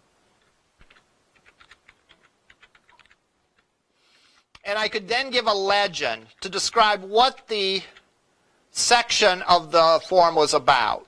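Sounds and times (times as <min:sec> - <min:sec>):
typing on computer keyboard: 0:00.4 - 0:03.7.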